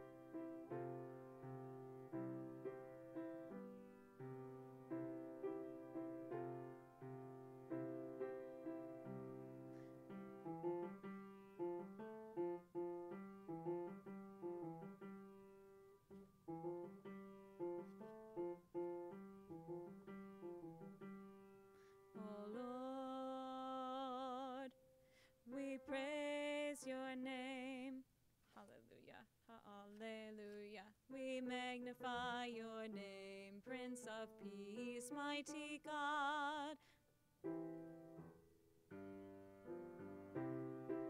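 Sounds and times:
piano chords: 0.0 - 24.5, 37.4 - 41.0
woman singing with vibrato: 22.2 - 24.8, 25.5 - 28.0, 28.6 - 36.8.

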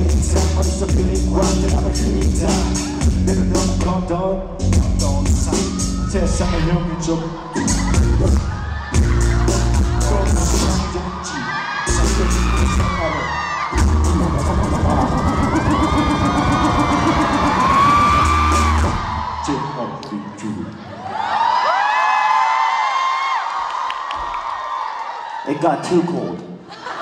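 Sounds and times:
live hip-hop song: 0.0 - 19.5
crowd screaming and cheering: 0.0 - 27.0.

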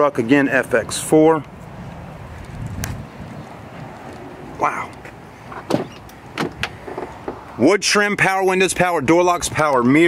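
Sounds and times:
wind buffeting microphone: 0.9 - 7.6, 8.7 - 10.0.

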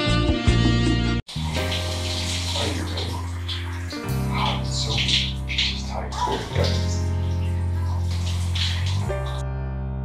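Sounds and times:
background music: 0.0 - 10.0
water spraying from shower head: 1.3 - 9.4.

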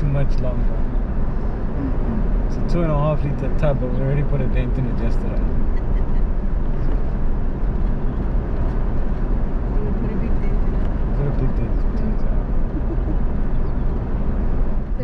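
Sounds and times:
vehicle cabin road noise: 0.0 - 15.0.

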